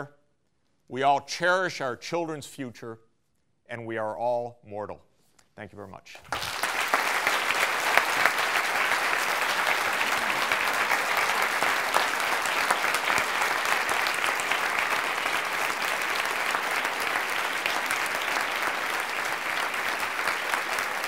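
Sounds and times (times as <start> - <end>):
audience applauding: 6.3 - 21.0.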